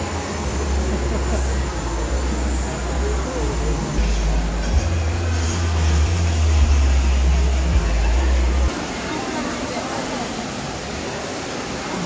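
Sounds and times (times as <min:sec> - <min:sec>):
crowd chatter in a large hall: 0:00.0 - 0:12.0.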